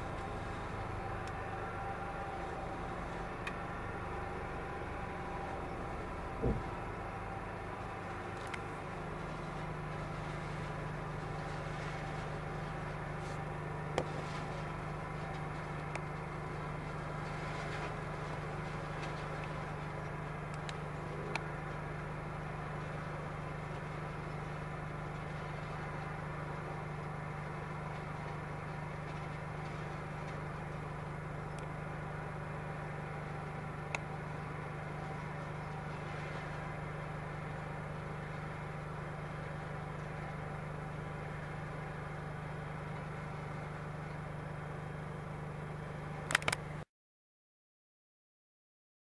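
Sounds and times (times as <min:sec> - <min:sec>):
tractor hedge cutter droning: 0:00.0 - 0:22.6.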